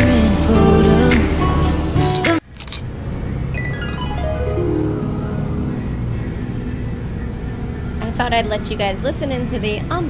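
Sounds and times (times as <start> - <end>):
bus engine and tyres rumbling: 0.0 - 10.0.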